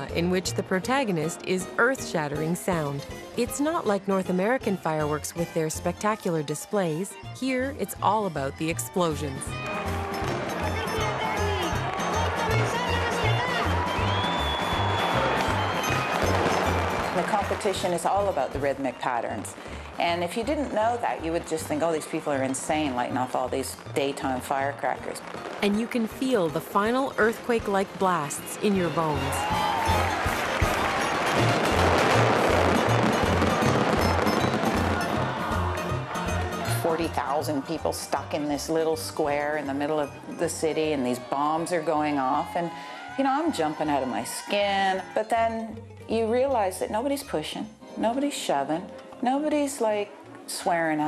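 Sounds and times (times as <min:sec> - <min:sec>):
firecracker barrage: 0:13.6 - 0:22.9, 0:23.8 - 0:36.7.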